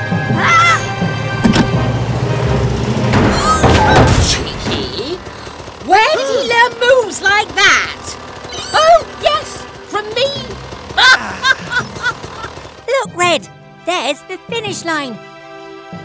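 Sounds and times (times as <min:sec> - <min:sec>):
wordless cartoon voices: 0:03.4 - 0:12.3.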